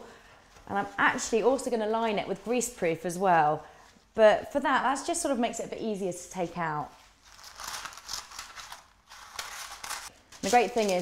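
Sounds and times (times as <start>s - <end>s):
baking paper rustling: 6.8s - 11.0s.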